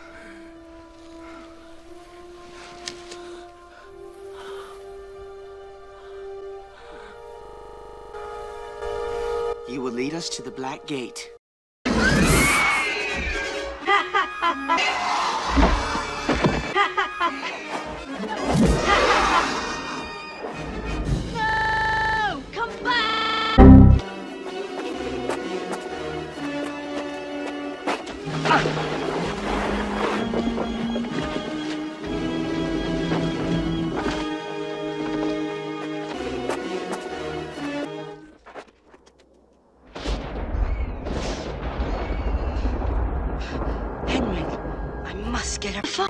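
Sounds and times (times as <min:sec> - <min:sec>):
background music: 0:00.0 - 0:11.4, 0:23.6 - 0:26.9
film score brass held notes: 0:06.0 - 0:11.4, 0:23.6 - 0:24.0
loud low boom: 0:23.6 - 0:24.0.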